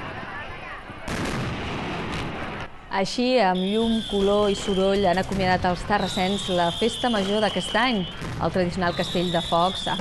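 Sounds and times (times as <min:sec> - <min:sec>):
fireworks bursting and crackling: 0:00.0 - 0:02.7, 0:03.8 - 0:10.0
loud firework bang: 0:01.1 - 0:02.7.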